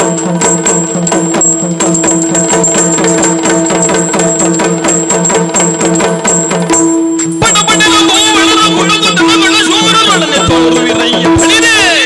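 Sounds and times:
barrel drum fast rhythm: 0.0s - 12.0s.

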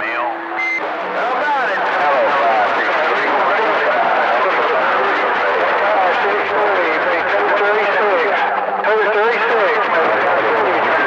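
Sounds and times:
radio static hiss: 0.0s - 11.0s
weak garbled voice on radio: 0.0s - 11.0s.

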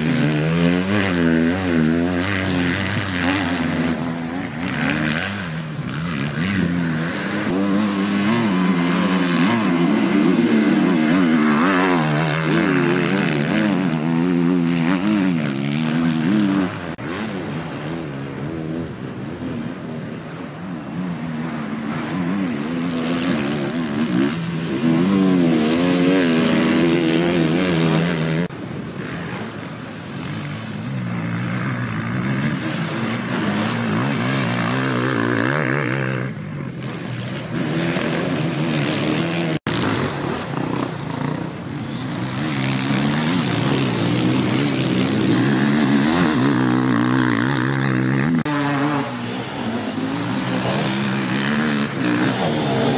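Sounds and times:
motorcycle engines revving: 0.0s - 52.9s.

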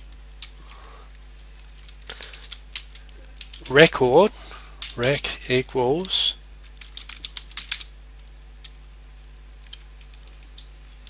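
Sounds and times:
steady low hum: 0.0s - 11.0s
computer keyboard typing: 6.8s - 7.8s.

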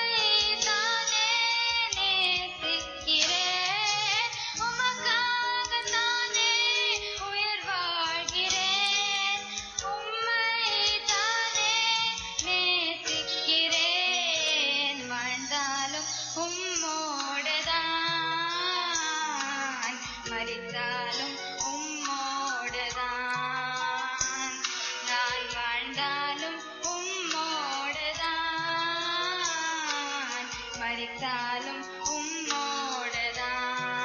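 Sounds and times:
girl singing into a microphone: 0.0s - 34.0s
instrumental backing music: 0.0s - 34.0s.

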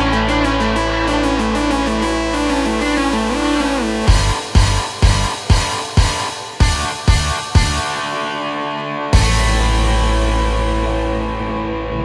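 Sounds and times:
guitar-led instrumental music: 0.0s - 12.0s
heavy drum beat: 4.1s - 8.0s, 9.2s - 10.1s.

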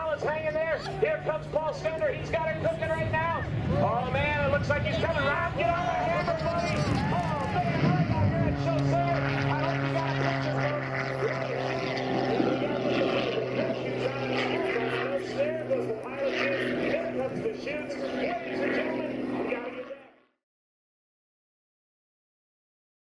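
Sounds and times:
jet engine rushing: 0.0s - 20.1s
voices: 0.0s - 20.2s
propeller plane engine droning: 0.0s - 20.4s.

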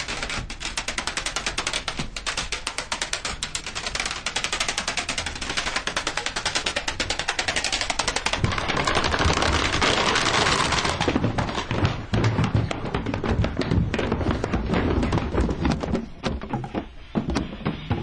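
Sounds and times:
cases thudding down stairs: 6.2s - 18.0s.

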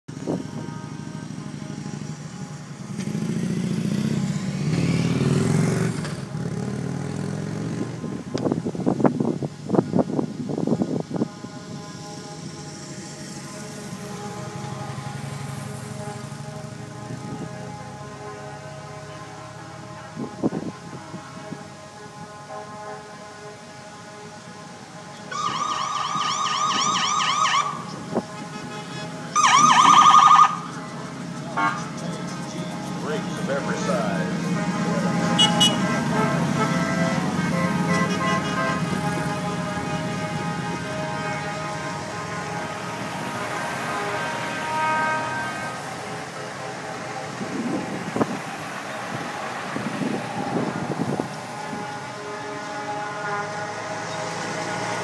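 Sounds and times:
vehicles passing on road: 0.0s - 55.0s
emergency siren warbling: 10.5s - 55.0s
sharp engine sounds: 25.3s - 39.8s
deep engine rumble: 27.7s - 53.6s.

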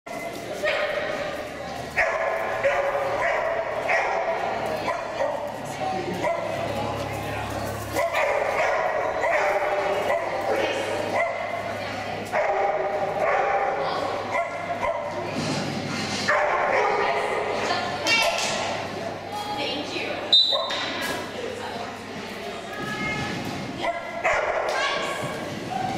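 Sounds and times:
people talking: 0.1s - 25.9s.

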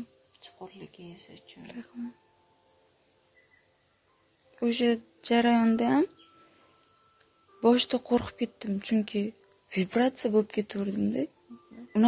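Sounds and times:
woman speaking quietly: 0.0s - 2.2s.

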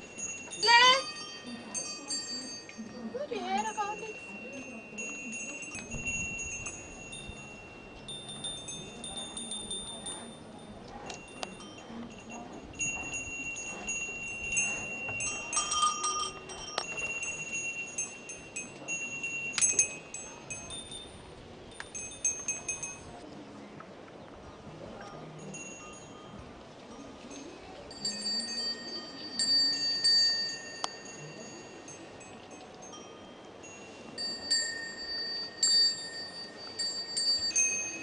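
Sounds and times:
goat bells ringing: 0.0s - 23.2s, 25.2s - 38.0s.

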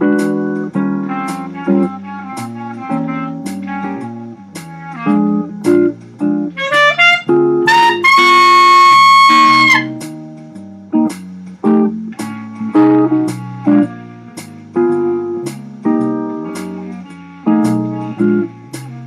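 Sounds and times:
clarinet playing blues tune: 0.0s - 10.0s, 12.1s - 19.0s
guitar accompaniment: 0.0s - 19.0s.

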